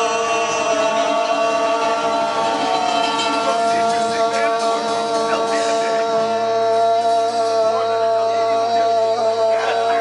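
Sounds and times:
live punk band playing: 0.0 - 8.5
man singing: 0.0 - 10.0.

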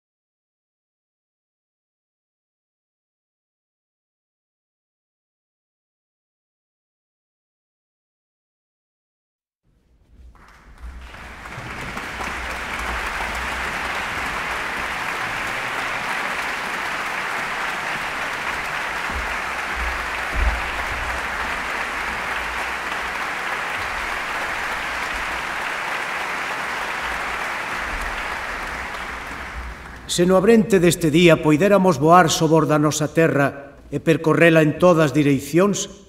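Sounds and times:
large audience applauding: 10.2 - 31.2.

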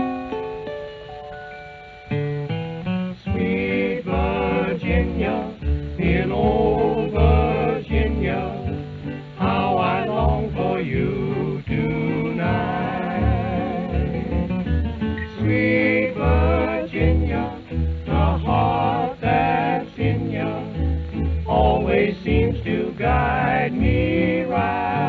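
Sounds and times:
country string band: 2.4 - 25.0.

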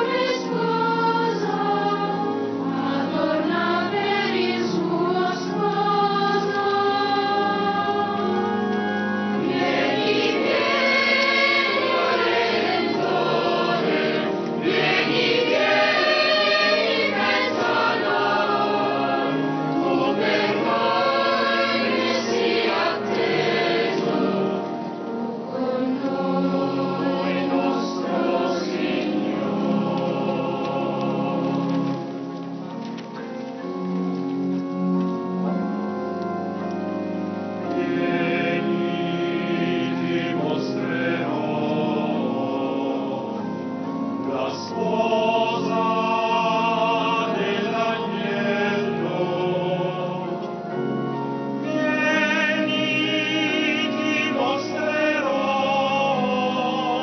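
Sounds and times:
choir singing a hymn: 0.0 - 32.6, 36.4 - 57.0.

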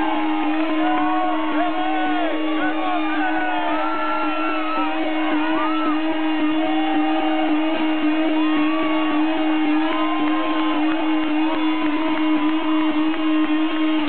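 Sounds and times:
electric guitar feedback drone: 0.0 - 14.0.

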